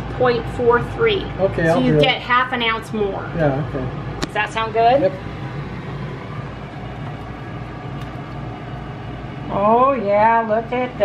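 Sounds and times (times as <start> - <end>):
fan humming and rushing: 0.0 - 11.0.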